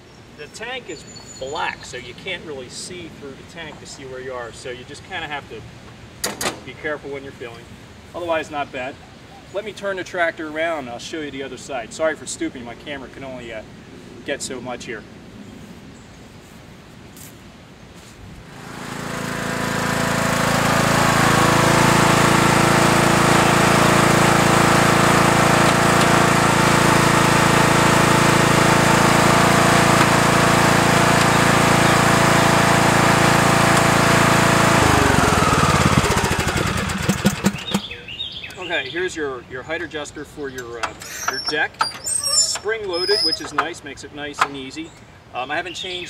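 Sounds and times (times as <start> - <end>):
riding mower engine running: 6.2 - 7.0, 18.4 - 38.7, 39.8 - 44.8.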